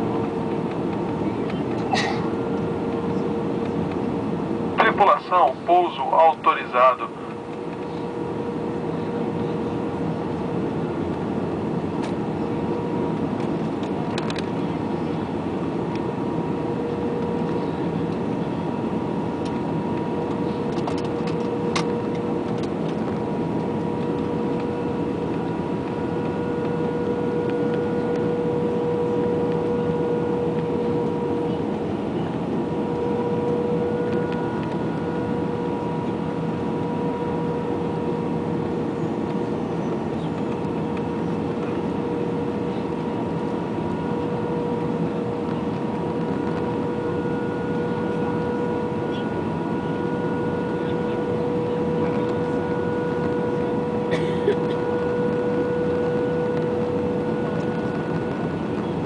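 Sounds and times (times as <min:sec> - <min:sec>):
airflow and jet engine noise: 0:00.0 - 0:59.0.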